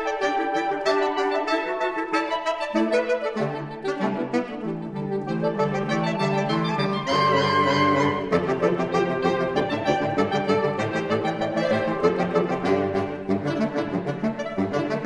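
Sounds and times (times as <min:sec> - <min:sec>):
saxophone quartet playing: 0:00.0 - 0:15.0.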